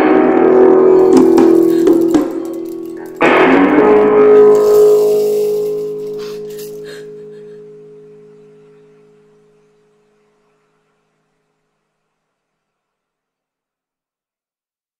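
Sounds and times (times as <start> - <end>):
guitar chords strummed: 0.0 - 9.6.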